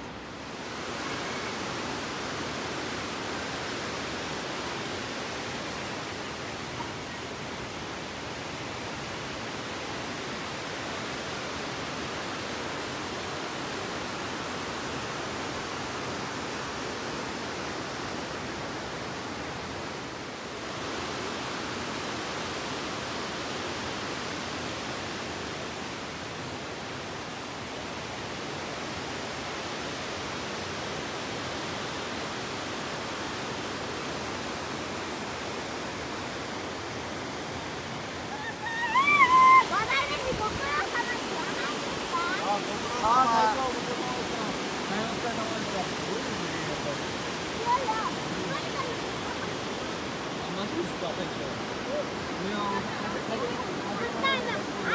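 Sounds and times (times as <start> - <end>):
waterfall rushing: 0.0 - 54.9.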